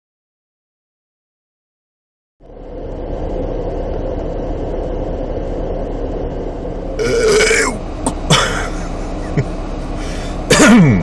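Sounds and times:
car idling from inside cabin: 2.4 - 11.0
man burping loudly: 7.0 - 8.5.

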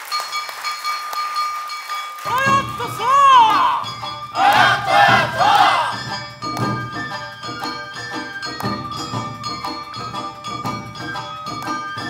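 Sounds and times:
festival band music: 2.2 - 12.0
crowd of dancers shouting a chant: 2.3 - 6.0.

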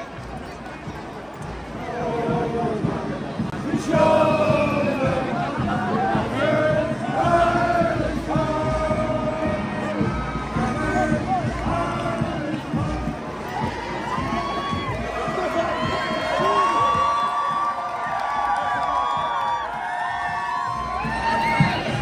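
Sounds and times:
crowd cheering and shouting: 0.0 - 22.0.

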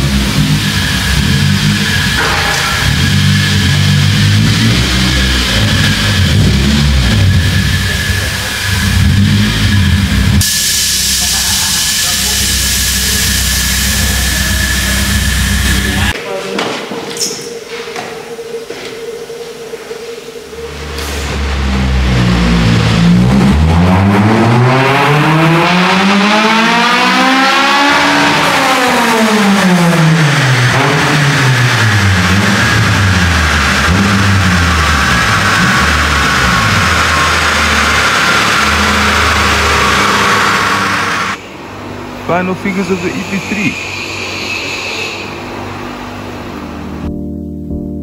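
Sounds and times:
car engine revving: 0.0 - 16.2, 18.4 - 47.1.

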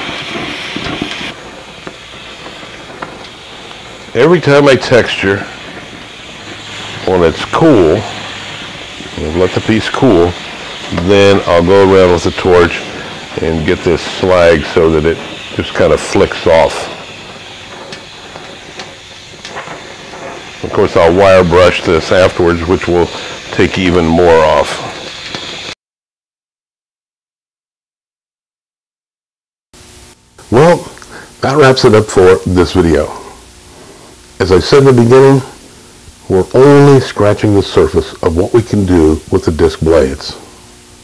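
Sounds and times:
cutting torch flame hissing: 0.0 - 25.8, 29.8 - 41.0.

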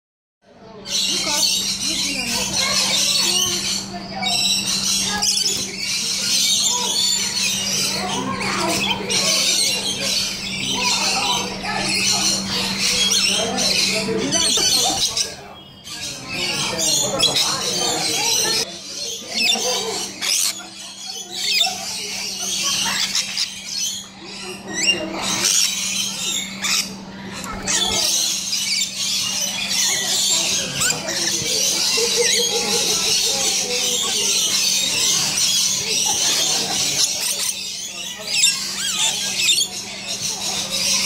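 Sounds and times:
lorikeets screeching and chattering: 0.5 - 41.0.

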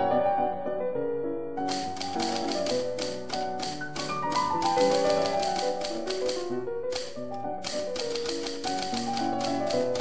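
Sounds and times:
background music with keyboard tones: 0.0 - 10.0
typewriter key clicks: 1.7 - 10.0.

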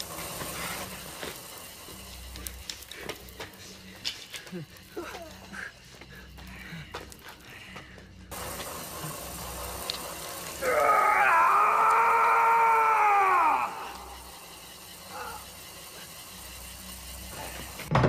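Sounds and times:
person crying out: 10.6 - 14.2.

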